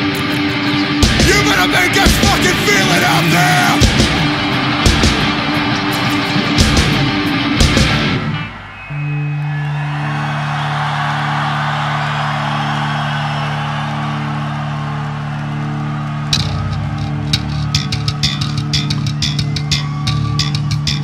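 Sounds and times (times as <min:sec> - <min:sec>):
drums: 0:00.0 - 0:09.5, 0:15.6 - 0:21.0
bass guitar: 0:00.0 - 0:10.2, 0:12.2 - 0:21.0.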